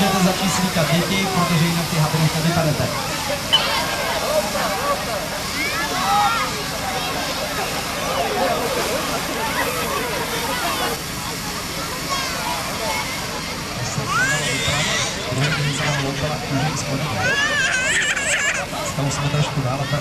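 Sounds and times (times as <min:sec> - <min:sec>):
many voices chattering: 0:00.0 - 0:20.0.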